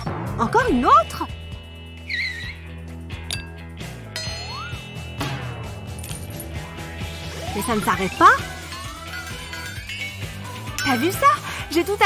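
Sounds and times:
light background music: 0.0 - 12.0.

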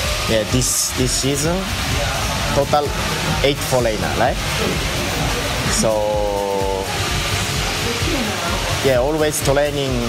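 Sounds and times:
man saying uhh: 5.6 - 6.7.

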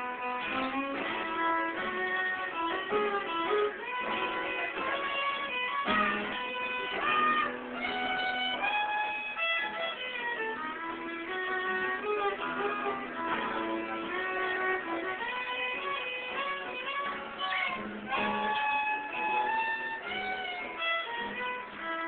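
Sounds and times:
acoustic guitar accompaniment: 0.0 - 22.0
fiddle melody: 0.0 - 22.0.

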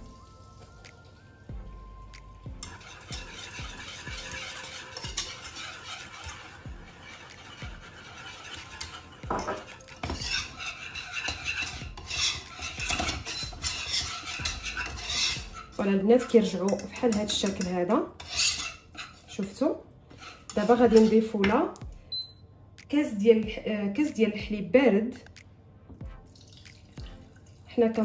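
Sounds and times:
soft sizzle: 0.0 - 21.8
whisk scraping in a saucepan: 2.6 - 21.4.

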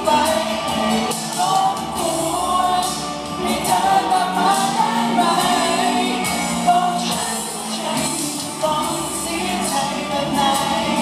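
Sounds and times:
instrumental backing music: 0.0 - 11.0
man singing into microphone: 0.0 - 11.0.

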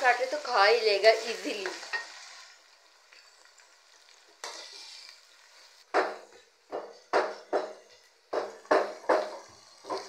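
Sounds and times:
spatula stirring in pan: 0.0 - 10.0
vegetables sizzling in oil: 0.0 - 10.0.

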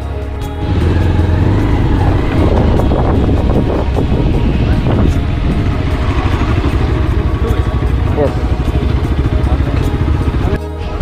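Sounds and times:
motorcycle engine running: 0.0 - 11.0
music: 0.0 - 11.0
wind on microphone: 0.5 - 7.8.

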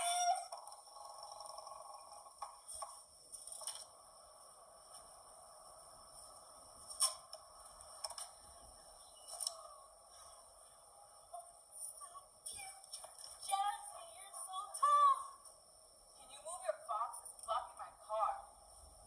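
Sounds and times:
steady hiss: 2.2 - 17.8
tinny voices through small speaker: 9.1 - 15.4, 16.2 - 18.6.

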